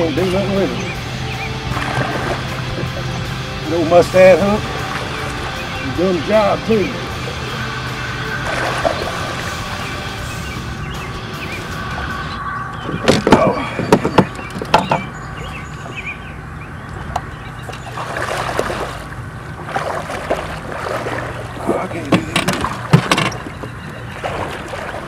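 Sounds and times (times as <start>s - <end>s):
fish thrashing and splashing: 1.6s - 3.1s, 7.1s - 10.3s, 11.6s - 25.0s.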